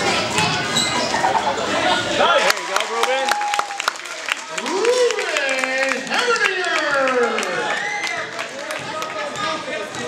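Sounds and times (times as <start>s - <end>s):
people calling out and cheering: 0.8s - 10.0s
crowd clapping: 2.3s - 10.0s.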